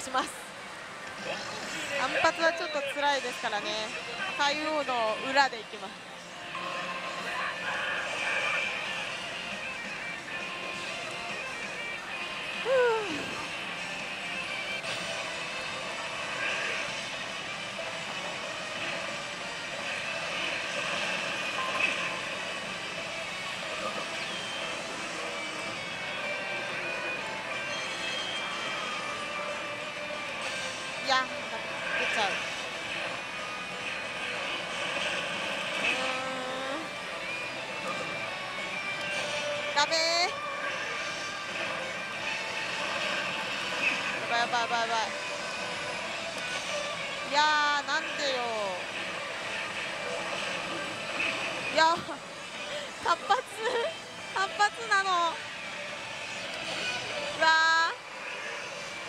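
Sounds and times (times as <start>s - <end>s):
din of gaming parlour: 0.0s - 59.0s
slot machine music: 13.2s - 59.0s.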